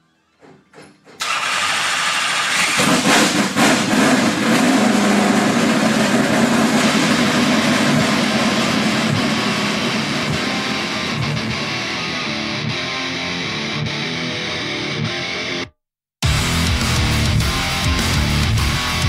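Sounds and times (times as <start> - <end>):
car engine starting and running: 1.2 - 12.2.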